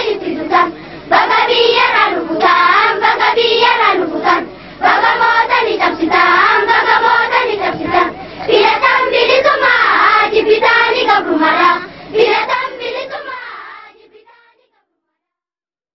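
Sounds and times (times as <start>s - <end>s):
children singing: 0.0s - 14.5s.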